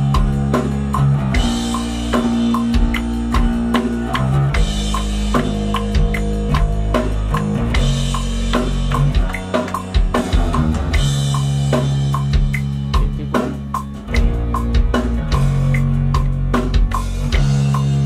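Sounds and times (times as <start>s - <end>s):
electric bass guitar: 0.0s - 18.0s
rock drum beat: 0.0s - 18.0s.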